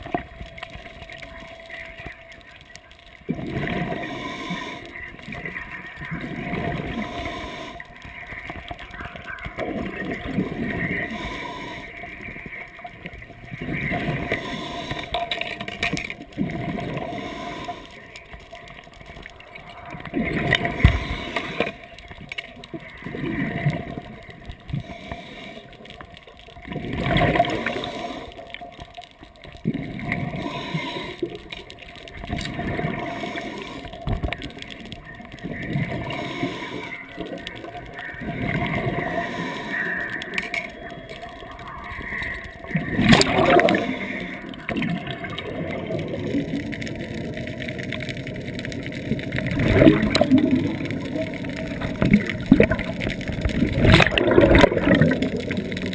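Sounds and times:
underwater bubbling and gurgling: 0.0 - 55.9.

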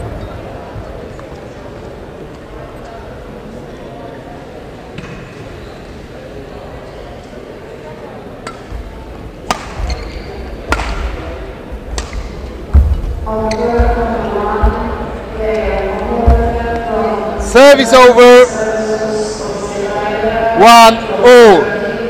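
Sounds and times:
rackets striking shuttlecock: 8.4 - 8.8, 9.4 - 11.3, 11.9 - 12.9.

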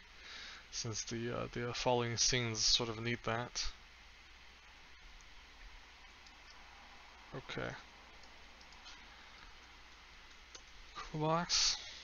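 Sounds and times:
low steady hum: 0.0 - 12.0
faint clicks: 8.2 - 10.8.

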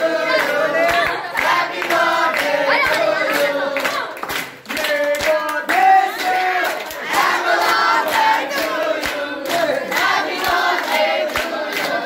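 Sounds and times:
clapping to a beat: 0.0 - 12.0
teenagers singing and chanting: 0.0 - 12.0.

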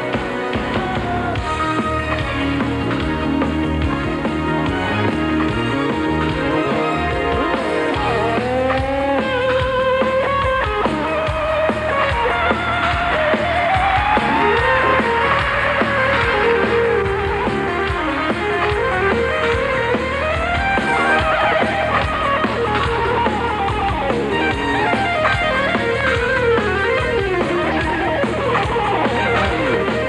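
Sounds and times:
drums keeping time: 0.0 - 30.0
live rock band: 0.0 - 30.0
sliding electric guitar: 0.0 - 30.0.

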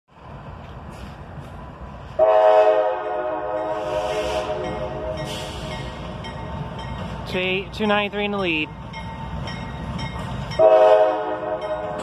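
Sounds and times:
low rumble of train: 0.1 - 12.0
train air horn blast: 2.2 - 5.7, 10.6 - 12.0.

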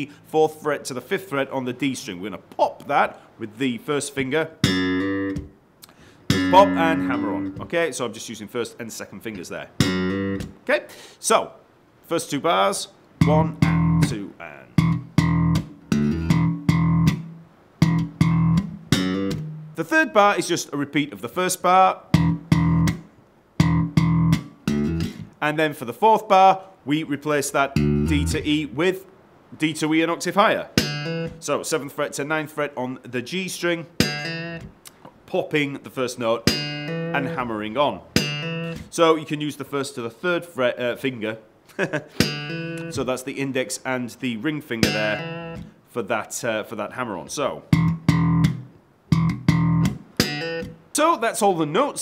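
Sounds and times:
slap bass notes: 4.6 - 5.6, 6.3 - 7.7, 9.7 - 10.6, 13.2 - 19.8, 22.1 - 25.4, 27.7 - 28.6, 30.8 - 31.4, 34.0 - 34.8, 36.5 - 38.9, 42.2 - 43.0, 44.8 - 45.7, 47.6 - 50.8.

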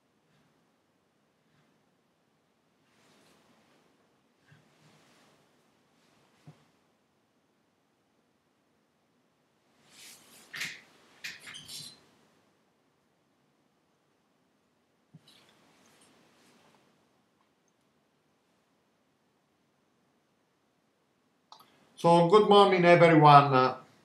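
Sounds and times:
clicks: 21.5 - 21.8.

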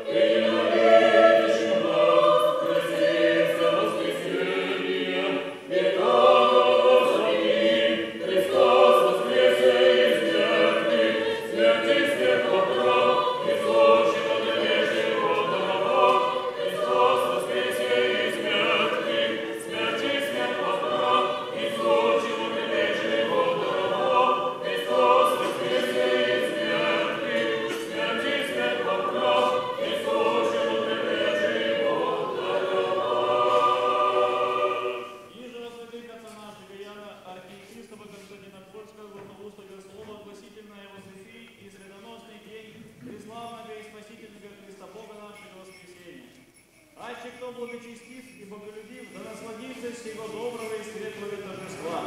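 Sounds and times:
choir singing a hymn: 0.0 - 35.5, 50.2 - 52.0.

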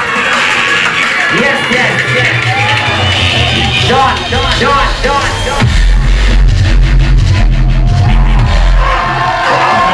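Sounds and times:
fast hard drum pattern: 0.0 - 9.4
loud live music through speakers: 0.0 - 9.9
pulsing bass line: 1.3 - 9.4.

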